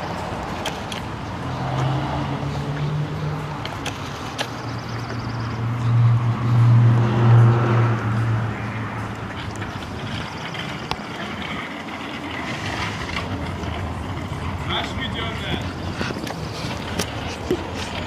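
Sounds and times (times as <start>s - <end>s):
low engine hum: 0.0s - 18.0s.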